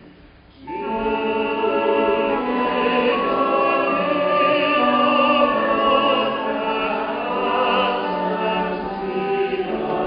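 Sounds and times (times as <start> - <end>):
choir singing: 0.6 - 10.0.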